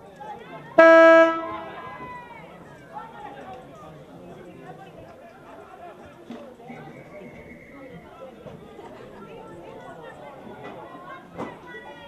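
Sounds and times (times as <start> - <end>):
voices: 0.0 - 12.0
car horn toot: 0.8 - 1.9.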